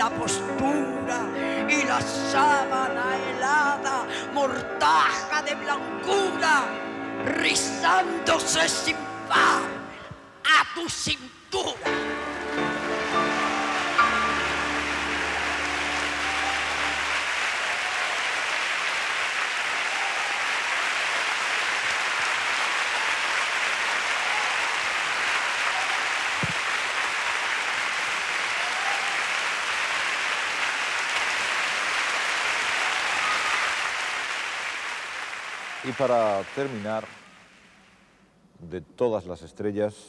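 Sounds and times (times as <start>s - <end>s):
audience applauding: 11.8s - 37.8s
held music chord: 11.9s - 17.1s.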